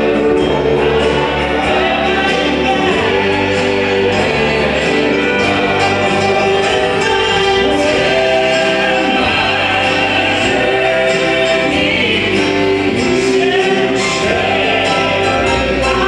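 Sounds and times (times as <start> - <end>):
electric keyboard: 0.0 - 16.0
vocal quartet singing in harmony: 0.0 - 16.0.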